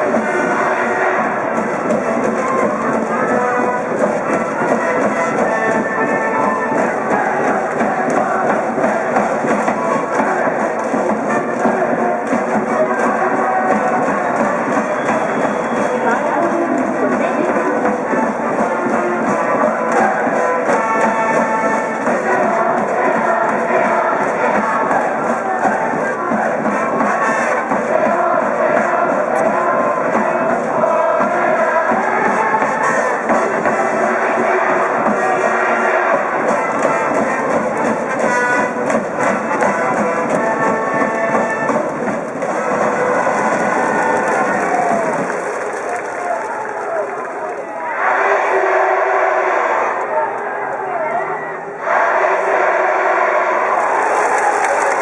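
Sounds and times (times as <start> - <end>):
brass band playing: 0.0 - 46.6
crowd chanting: 0.0 - 55.0.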